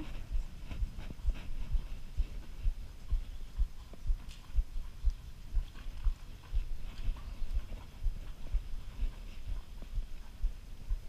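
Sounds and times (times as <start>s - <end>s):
horse hoofbeats on sand: 0.0s - 11.0s.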